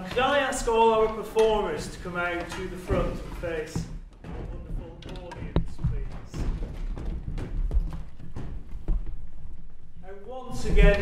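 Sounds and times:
feet shuffling: 0.0s - 11.0s
footsteps on wooden floor: 0.0s - 11.0s.

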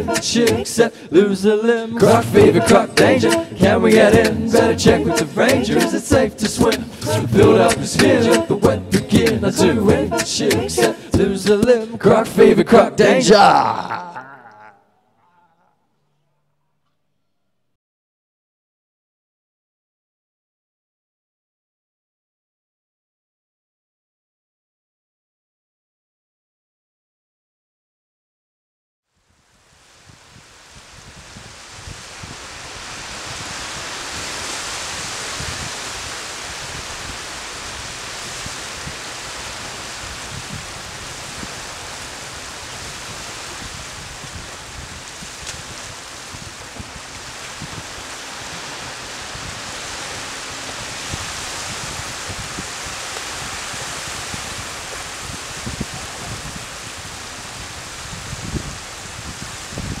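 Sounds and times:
wind rumble on microphone: 29.3s - 60.0s
small waves washing on beach: 29.4s - 60.0s.

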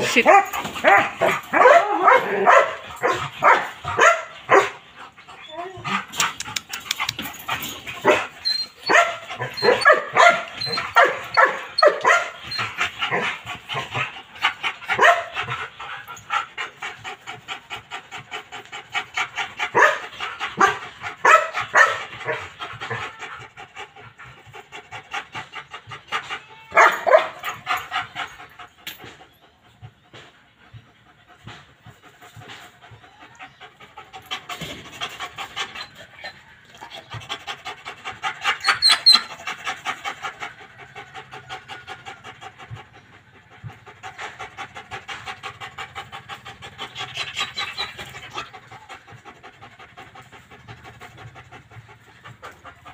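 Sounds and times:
dog panting hard: 0.0s - 52.9s.

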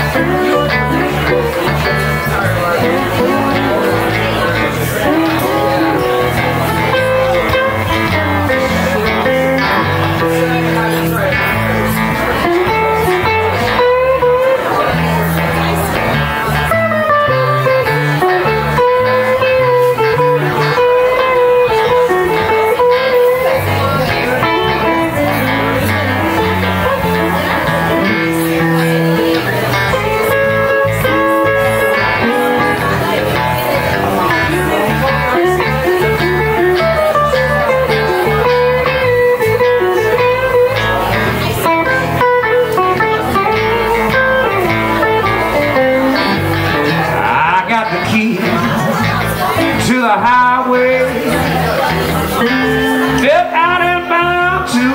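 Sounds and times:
electric bass: 0.0s - 54.9s
lead electric guitar solo: 0.0s - 54.9s
rhythm electric guitar: 0.0s - 54.9s.

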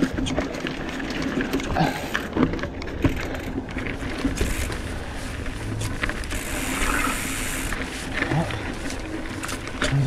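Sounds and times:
bike knocks and rattles: 0.0s - 10.0s.

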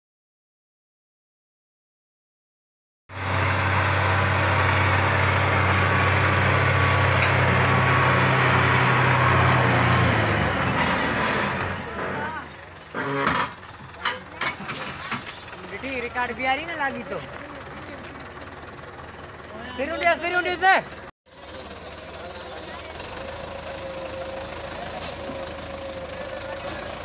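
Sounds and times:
tractor diesel engine straining: 3.1s - 27.0s
voices shouting: 11.6s - 12.7s.

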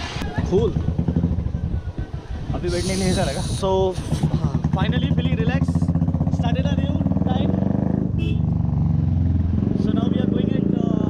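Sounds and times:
motorcycle engine running: 0.3s - 11.0s.

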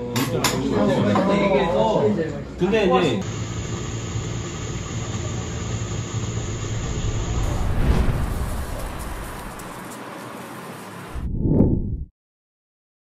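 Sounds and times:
street traffic rumble: 5.9s - 11.2s
vehicle passing: 6.6s - 10.0s.

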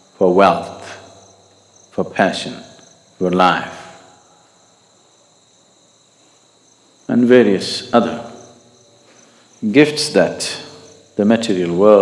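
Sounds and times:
crickets chirping: 0.0s - 12.0s
man's voice: 2.0s - 4.0s, 7.1s - 8.4s, 9.6s - 12.0s.

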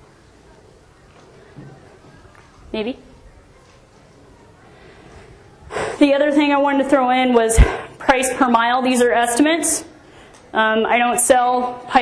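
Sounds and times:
woman speaking: 2.7s - 3.1s, 5.9s - 9.9s, 10.5s - 12.0s.

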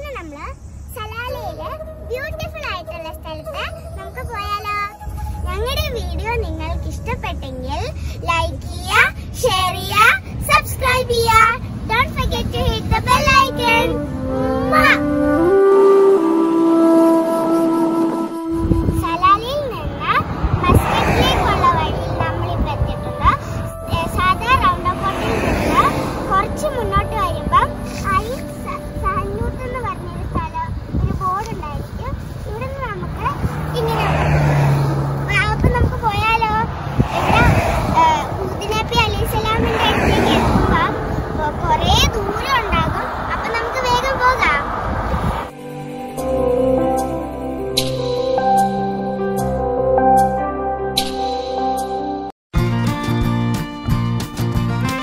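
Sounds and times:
girls speaking: 0.0s - 14.0s, 14.6s - 15.0s, 18.9s - 45.1s
vehicle engine hum: 0.0s - 45.6s.

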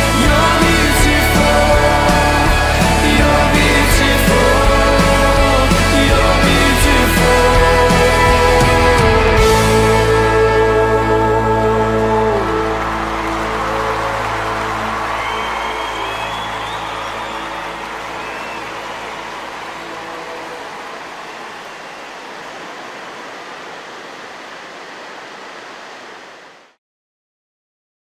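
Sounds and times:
sustained chord of worship song: 0.0s - 26.4s
ocean surf: 12.4s - 26.8s.

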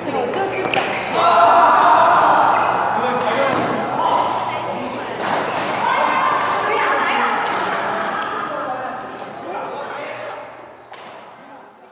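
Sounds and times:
people talking at once: 0.0s - 11.9s.

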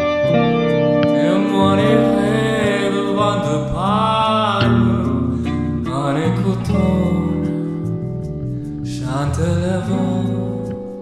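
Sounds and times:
electric guitar bending notes: 0.0s - 11.0s
steady bass line: 0.0s - 11.0s.

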